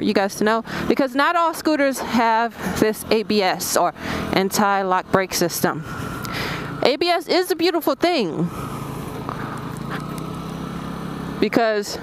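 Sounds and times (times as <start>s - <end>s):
road noise: 0.0s - 12.0s
scooter engine running: 0.0s - 12.0s.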